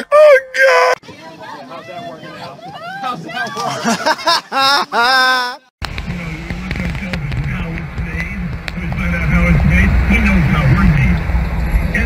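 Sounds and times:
high-pitched yell: 0:00.0 - 0:01.0
low wavering hum: 0:05.9 - 0:12.0.

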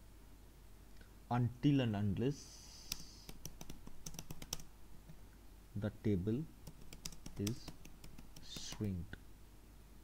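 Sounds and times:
computer keyboard typing: 0:02.9 - 0:04.7, 0:06.6 - 0:09.0.

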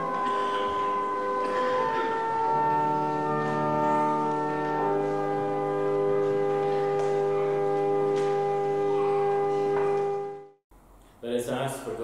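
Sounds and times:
organ holding a chord: 0:00.0 - 0:10.5.

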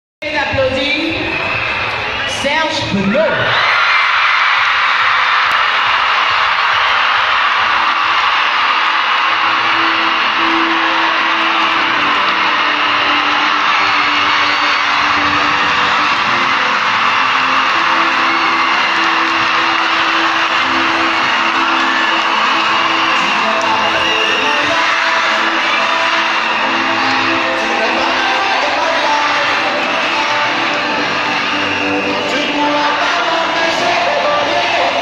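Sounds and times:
loud live dance music: 0:00.2 - 0:35.0
crowd cheering and screaming: 0:00.3 - 0:35.0.

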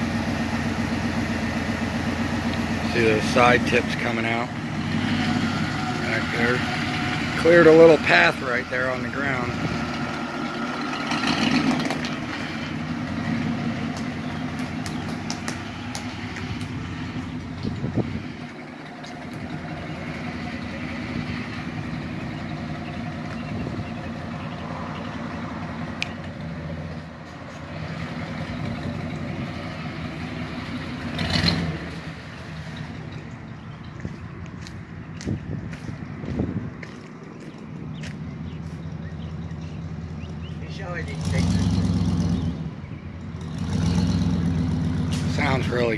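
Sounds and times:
car exhaust engine running: 0:00.0 - 0:45.9.

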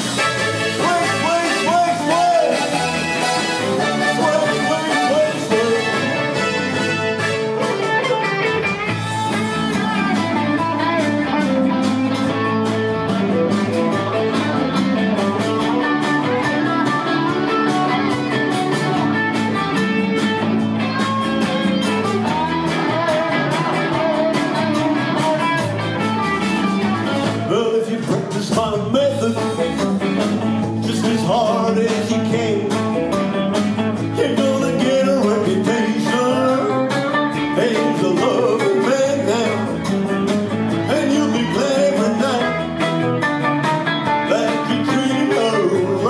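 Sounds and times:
bass guitar: 0:00.0 - 0:46.0
electric guitars: 0:00.0 - 0:46.0
keyboards: 0:00.0 - 0:46.0
steady drum beat: 0:00.0 - 0:46.0
man singing into microphone: 0:00.7 - 0:03.0, 0:03.8 - 0:06.8, 0:27.4 - 0:29.8, 0:30.7 - 0:33.0, 0:34.2 - 0:36.9, 0:37.5 - 0:39.8, 0:40.8 - 0:42.8, 0:44.2 - 0:46.0.

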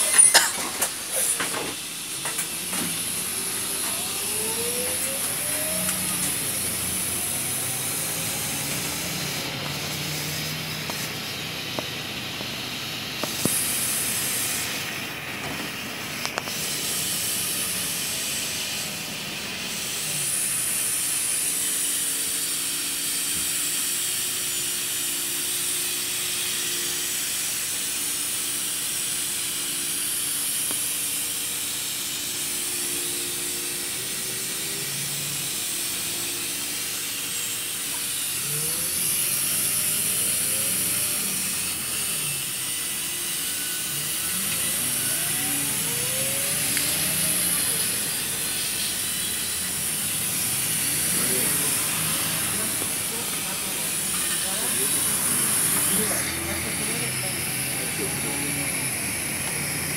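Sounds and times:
steady whine: 0:00.0 - 0:59.9
bus road and engine noise: 0:00.6 - 0:21.4, 0:43.9 - 0:59.9
bus engine accelerating: 0:00.9 - 0:21.0, 0:44.0 - 0:59.9.

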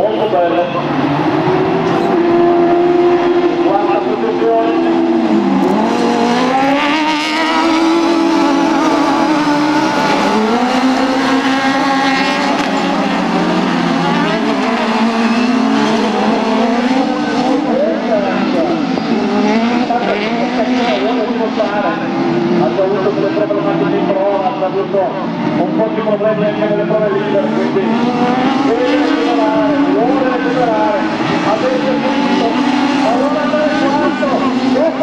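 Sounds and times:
racing buggy engines revving: 0:00.0 - 0:35.0.

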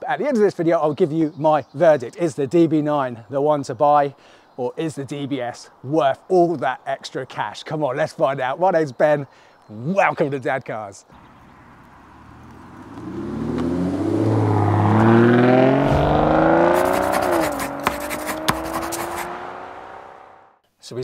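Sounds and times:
car engine accelerating: 0:11.4 - 0:20.6.

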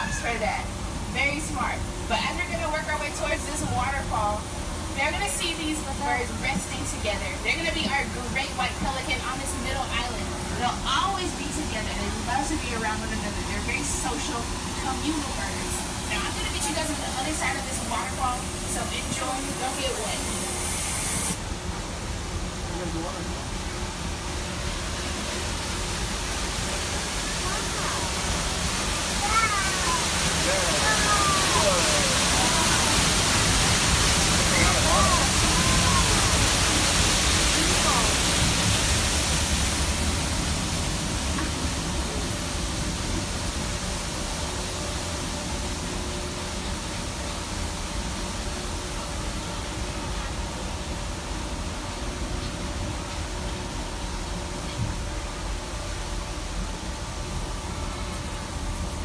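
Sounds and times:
waterfall rushing: 0:00.0 - 0:50.2
monorail car rumbling: 0:00.0 - 0:59.0.

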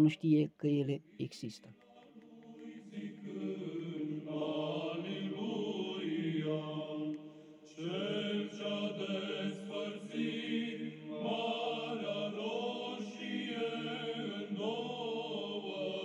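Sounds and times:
low voices chanting: 0:01.1 - 0:16.0.

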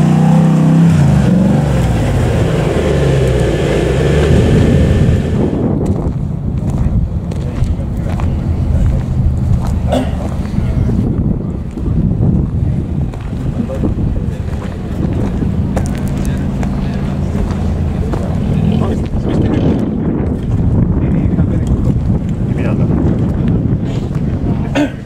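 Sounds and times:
vehicle engine rumble: 0:00.0 - 0:25.0
wind buffeting microphone: 0:00.8 - 0:25.0.

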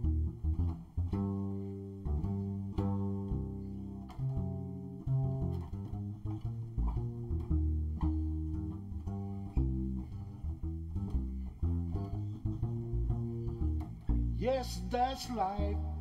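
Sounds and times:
double bass plucked notes: 0:00.0 - 0:16.0.

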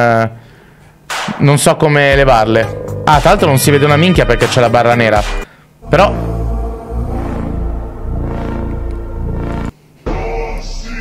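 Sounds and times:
music with low held tones: 0:01.8 - 0:11.0.

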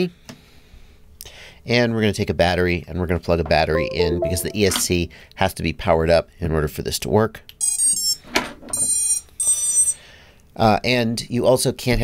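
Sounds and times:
high electronic startup beeps: 0:03.8 - 0:04.9.

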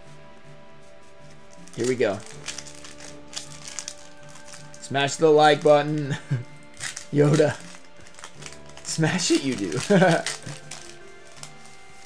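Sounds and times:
background music: 0:00.0 - 0:12.0
foil wrapper crinkling: 0:01.3 - 0:12.0.

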